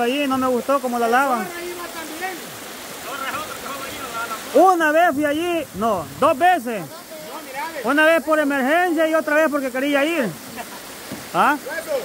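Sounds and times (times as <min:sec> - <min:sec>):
river water running over rocks: 0:00.0 - 0:12.0.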